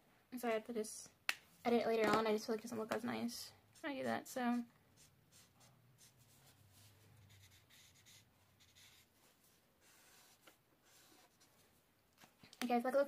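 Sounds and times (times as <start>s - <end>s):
marker rubbing on paper: 3.7s - 9.1s, 9.8s - 11.6s.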